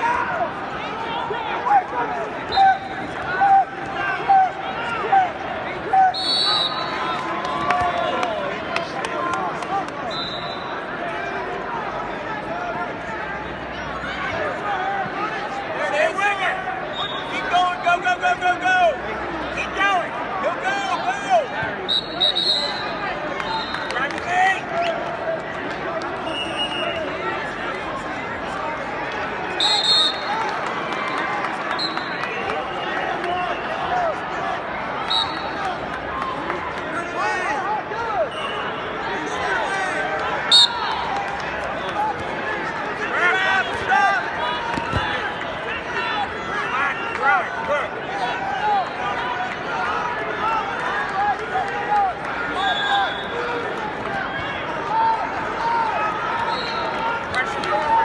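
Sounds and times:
crowd shouting and babble: 0.0s - 58.0s.

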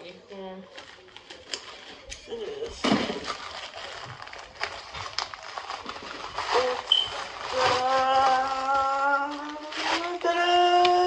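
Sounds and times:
packaging crinkling and rustling: 0.7s - 11.0s.

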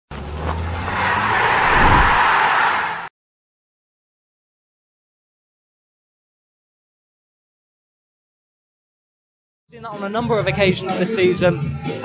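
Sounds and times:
whoosh: 1.4s - 2.5s.

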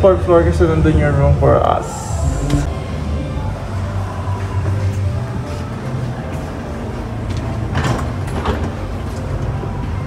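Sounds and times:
steady low hum: 0.0s - 8.2s.

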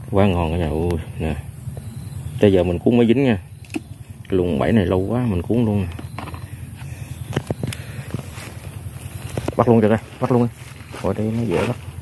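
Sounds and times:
wire trap clicks and knocks: 5.9s - 6.5s
rustle of handling traps: 6.0s - 12.0s.

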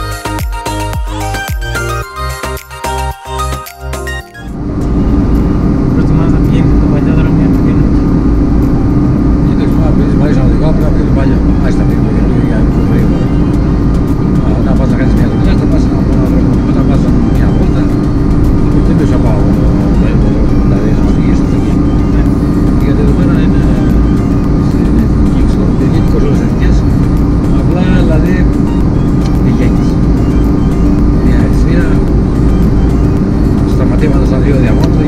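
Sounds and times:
car road and engine noise: 0.0s - 35.0s
music: 0.0s - 35.0s.

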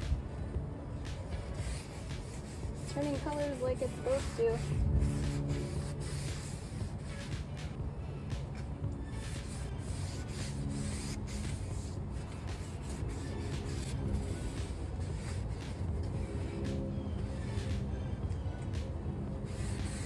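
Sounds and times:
background music: 0.0s - 20.0s
paper towel rubbing on griddle: 1.4s - 7.5s, 9.1s - 16.8s.

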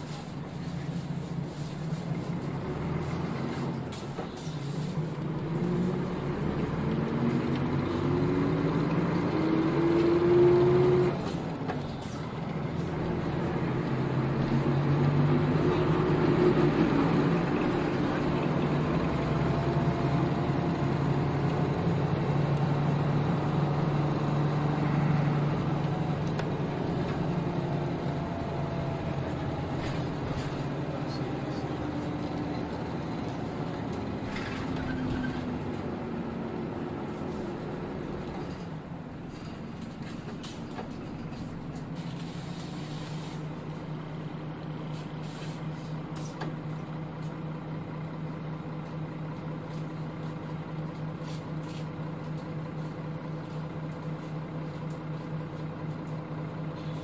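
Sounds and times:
bus diesel engine: 0.0s - 57.0s
air brake hiss: 42.2s - 43.5s, 44.9s - 46.4s.

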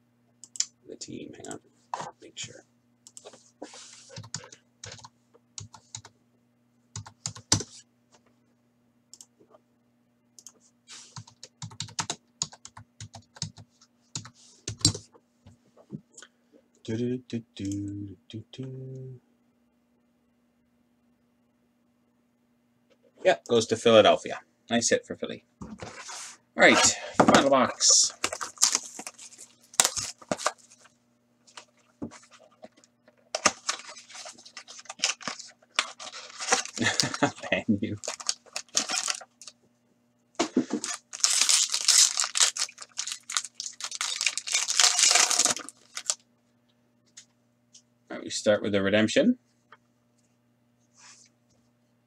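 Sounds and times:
faint electrical hum: 0.0s - 52.0s
computer keyboard typing: 4.2s - 6.1s, 7.0s - 7.7s, 11.2s - 15.0s
plastic wrapping torn and crumpled: 28.3s - 30.9s, 33.4s - 37.4s, 38.0s - 39.5s, 40.8s - 46.2s.

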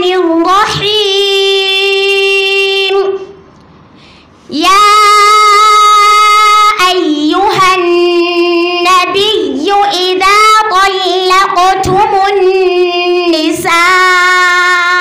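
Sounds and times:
girl chanting into microphone: 0.0s - 3.3s, 4.5s - 15.0s.

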